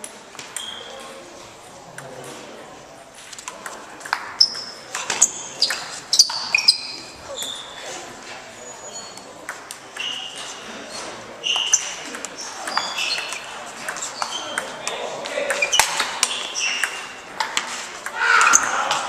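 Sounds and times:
table tennis balls clicking: 0:03.2 - 0:07.8, 0:09.1 - 0:10.6, 0:11.4 - 0:19.0.

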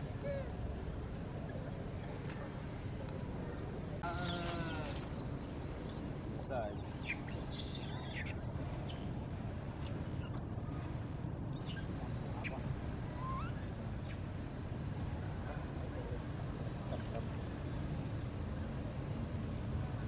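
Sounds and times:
high-pitched chirps and squeaks: 0:04.1 - 0:09.0.

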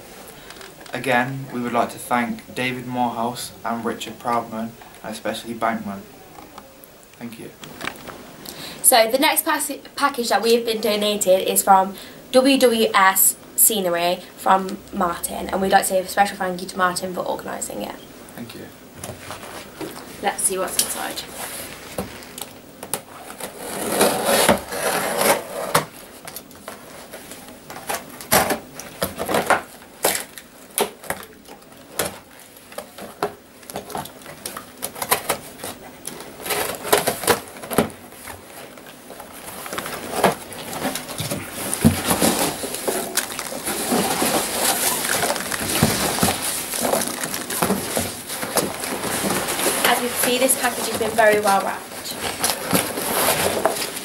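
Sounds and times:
rustling packing peanuts: 0:18.9 - 0:54.0
tape ripping: 0:21.9 - 0:54.0
blade scratching through tape: 0:23.4 - 0:25.8.

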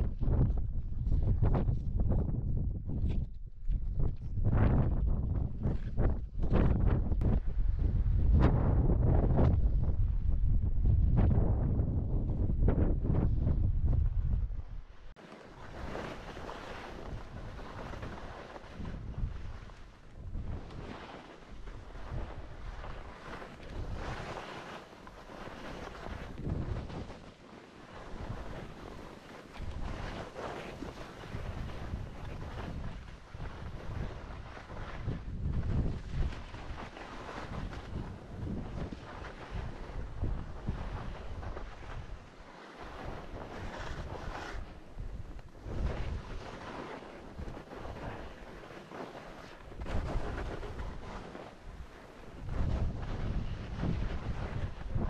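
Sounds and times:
wind buffeting microphone: 0:00.0 - 0:27.3, 0:27.9 - 0:55.0.

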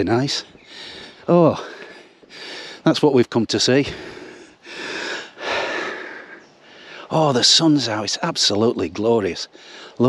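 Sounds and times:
man breathing close to microphone: 0:00.6 - 0:02.9, 0:03.8 - 0:07.1, 0:09.5 - 0:10.0.

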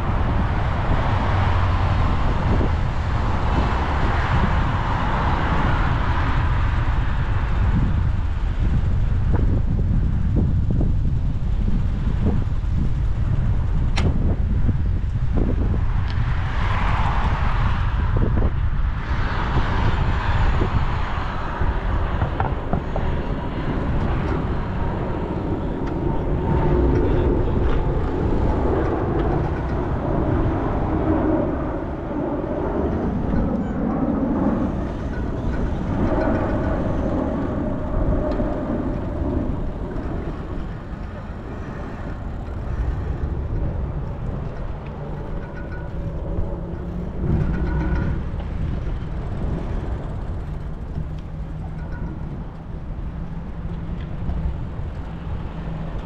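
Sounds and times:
road traffic passing: 0:00.0 - 0:56.0
wind rumble on microphone: 0:00.0 - 0:56.0.

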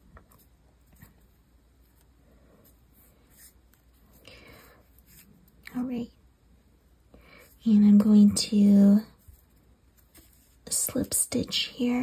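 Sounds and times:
crochet hook scratching yarn: 0:07.5 - 0:12.0.

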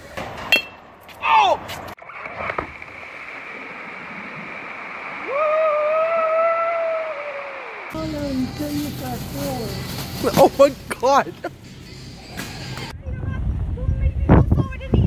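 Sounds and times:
water spraying: 0:02.0 - 0:12.9.

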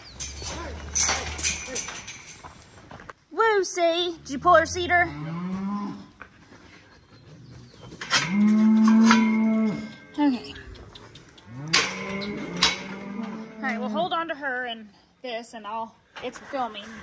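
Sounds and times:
cow mooing: 0:08.2 - 0:10.0, 0:11.5 - 0:14.2
sharp clicks: 0:08.2 - 0:12.2.

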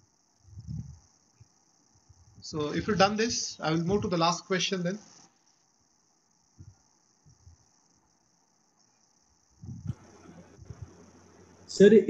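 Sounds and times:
high-pitched hiss: 0:00.0 - 0:12.0
soft low sounds: 0:09.6 - 0:12.0.

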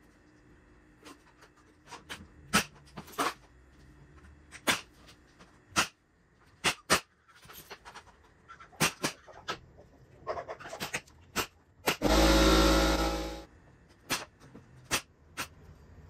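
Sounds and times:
nail gun: 0:11.4 - 0:13.4.

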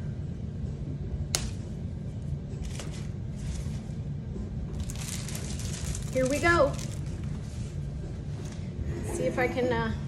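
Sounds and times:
faint music with low beat: 0:00.0 - 0:10.0.

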